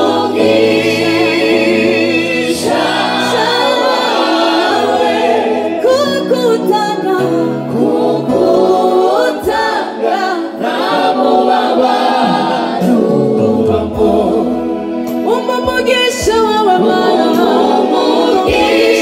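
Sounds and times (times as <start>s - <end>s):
gospel group singing in harmony: 0.0s - 19.0s.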